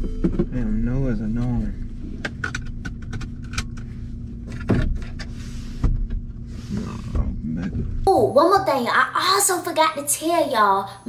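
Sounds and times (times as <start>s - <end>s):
car interior hum: 0.0s - 10.4s
seat belt buckling: 2.2s - 3.9s.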